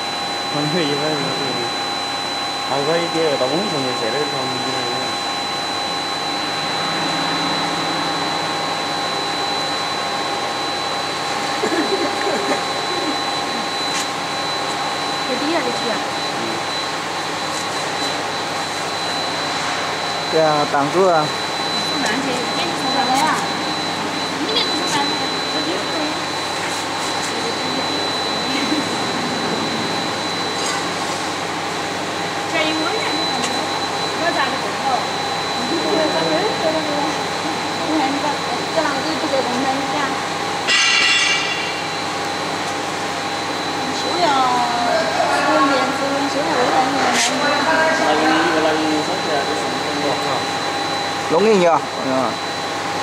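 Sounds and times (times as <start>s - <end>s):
machine drone with high whine: 0.0s - 53.0s.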